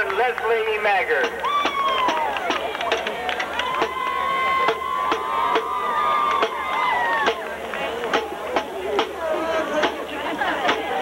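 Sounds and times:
crowd chatter: 0:00.0 - 0:11.0
marching drums beating: 0:01.2 - 0:11.0.

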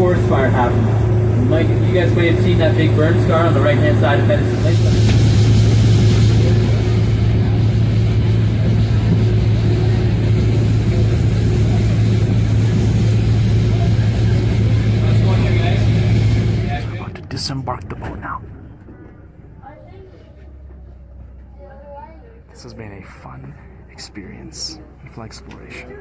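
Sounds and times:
water rushing against hull: 0:00.0 - 0:18.4
boat engine droning: 0:00.0 - 0:26.0.

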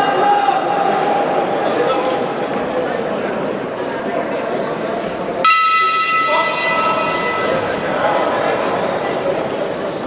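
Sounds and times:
crowd noise: 0:00.0 - 0:10.0
boxing ring bell ringing: 0:05.4 - 0:07.8.

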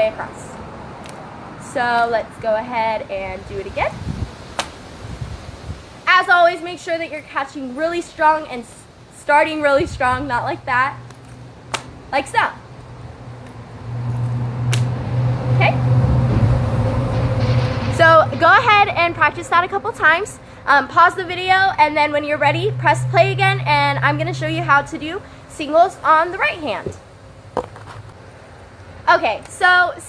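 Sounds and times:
wind rumbling on microphone: 0:02.9 - 0:06.4, 0:09.6 - 0:11.0, 0:13.0 - 0:20.4
low steady rumble: 0:08.2 - 0:28.2.

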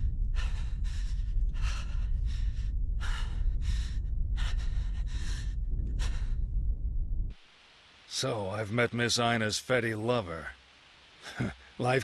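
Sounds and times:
deep rumble: 0:00.0 - 0:07.4.

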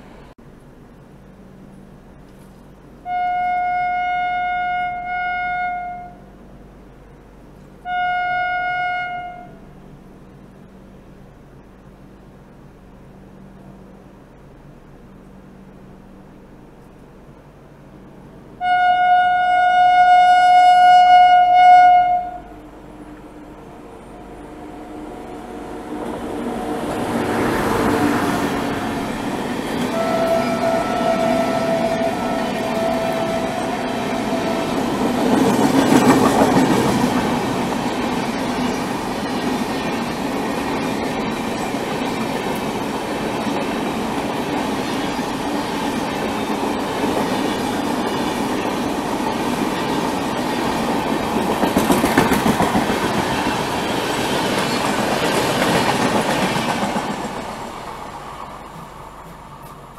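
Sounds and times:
train coaches passing: 0:01.2 - 0:59.9
train horn: 0:03.0 - 0:06.3, 0:07.8 - 0:09.7, 0:18.6 - 0:29.0, 0:29.8 - 0:35.2.

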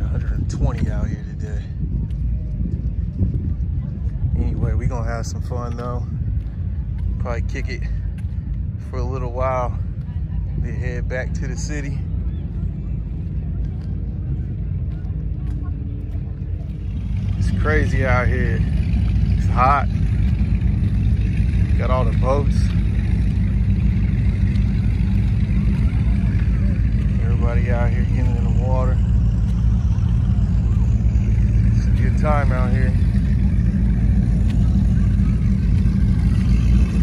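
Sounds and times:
faint voices of people: 0:00.0 - 0:20.4, 0:22.7 - 0:37.0
distant engine hum: 0:00.0 - 0:37.0
wind rumble on microphone: 0:00.0 - 0:37.0.

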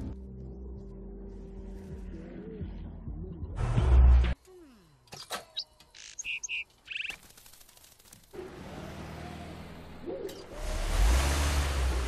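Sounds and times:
small bird chirping: 0:05.5 - 0:07.3
road noise: 0:08.3 - 0:12.0
truck engine humming: 0:08.4 - 0:12.0.

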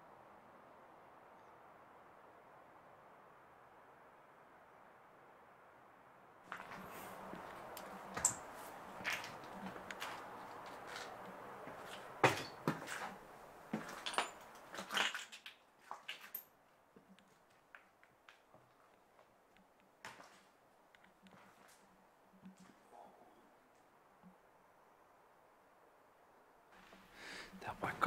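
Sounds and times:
footsteps: 0:06.5 - 0:15.0
steady background hiss: 0:16.4 - 0:28.0.

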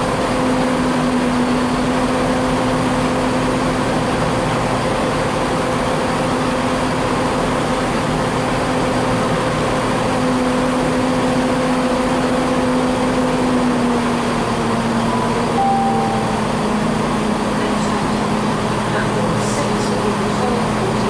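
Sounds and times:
diesel train engines droning: 0:00.0 - 0:21.0.

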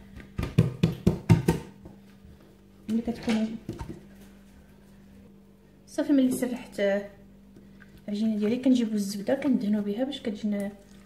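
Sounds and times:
dough knocking on work surface: 0:00.1 - 0:02.0.

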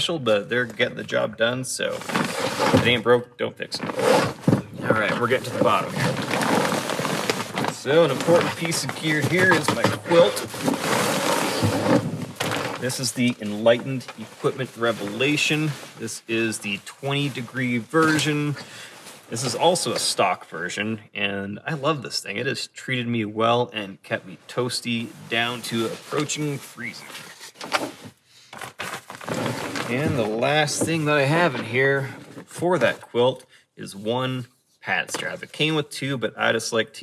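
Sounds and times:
fabric rustling and swishing: 0:05.0 - 0:16.5.

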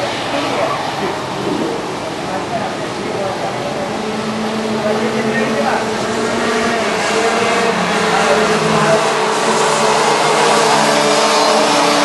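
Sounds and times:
racing karts engine drone: 0:00.0 - 0:12.0.

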